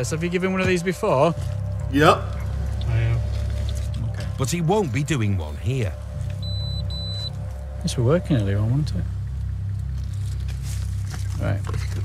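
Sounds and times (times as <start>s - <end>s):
breathalyser beeping: 6.4s - 7.4s.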